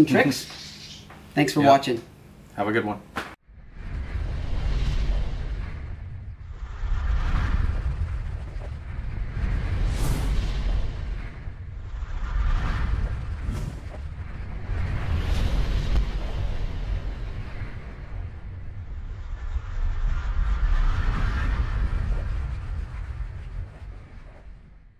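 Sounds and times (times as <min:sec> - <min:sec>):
deep rumbling: 0:03.4 - 0:24.9
whooshes: 0:03.4 - 0:24.9.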